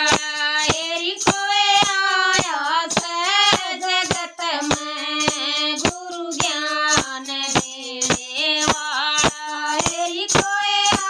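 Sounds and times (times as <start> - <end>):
handheld clappers clacking: 0.0 - 11.0
women singing devotional song: 0.0 - 11.0.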